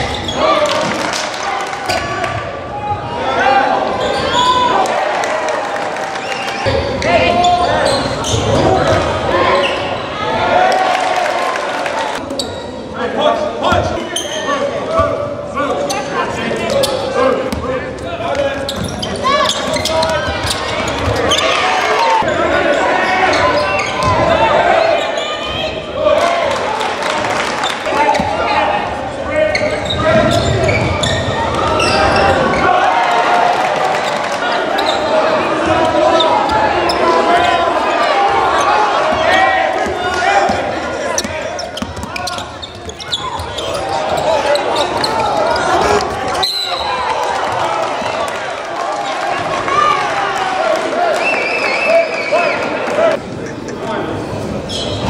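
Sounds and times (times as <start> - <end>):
people calling and shouting: 0.0 - 55.0.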